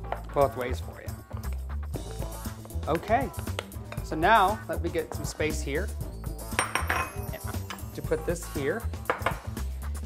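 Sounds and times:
background music: 0.0s - 10.0s
ceramic dishes clinking on stone: 6.6s - 7.8s.

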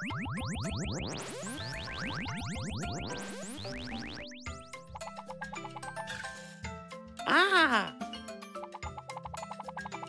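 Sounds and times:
light background music: 3.0s - 10.0s.

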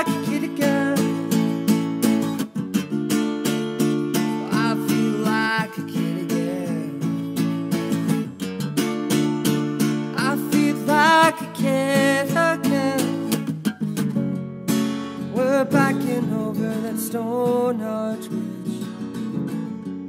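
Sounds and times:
acoustic guitar picked and strummed: 0.0s - 20.0s.

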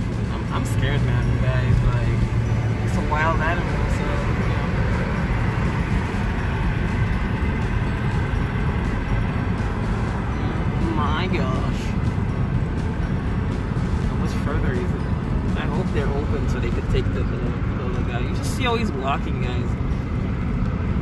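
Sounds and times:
road and engine rumble in car: 0.0s - 21.0s.

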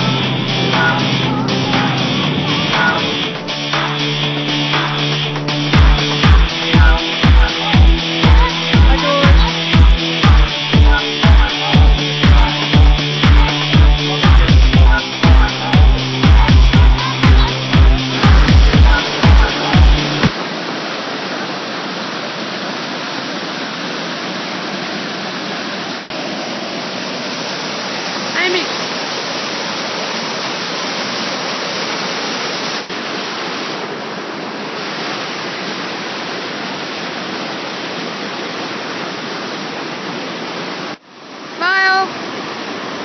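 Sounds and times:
waterfall rushing over boulders: 0.0s - 43.0s.

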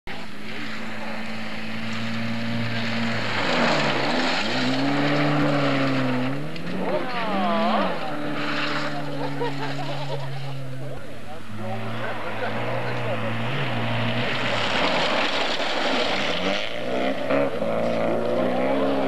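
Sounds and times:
rally car engine at speed: 0.1s - 19.0s.

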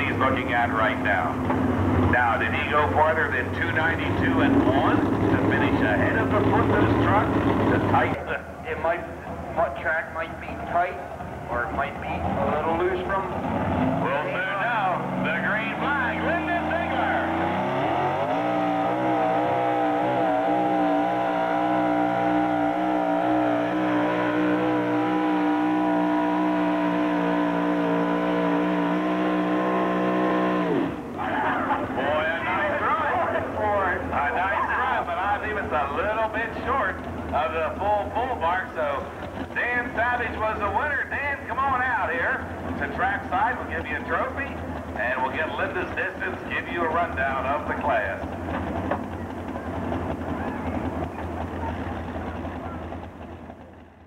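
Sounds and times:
loud rough engine noise: 0.0s - 54.0s
truck engine at full throttle: 0.0s - 54.0s.

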